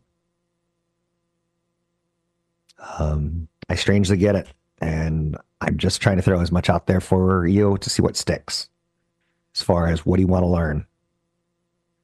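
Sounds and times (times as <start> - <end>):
faint steady hum: 0.0 - 12.0
man speaking: 2.8 - 8.7, 9.6 - 10.9.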